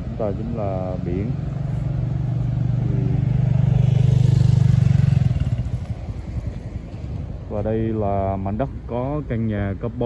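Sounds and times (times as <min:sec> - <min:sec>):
motorcycle engine running: 0:00.8 - 0:07.4.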